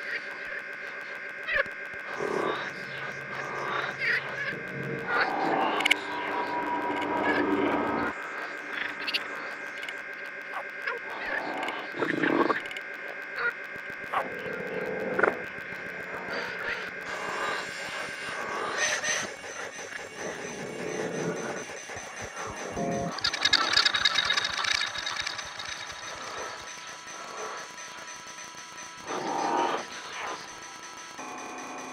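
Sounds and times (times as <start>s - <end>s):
drone of processed frog sounds: 0.0s - 31.9s
held electronic tones: 18.3s - 28.0s.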